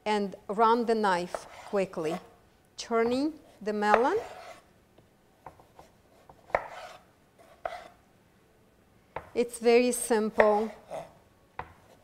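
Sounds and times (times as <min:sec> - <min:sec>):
knife slicing scrapes: 0:01.3 - 0:02.3, 0:04.2 - 0:04.7, 0:05.7 - 0:08.0.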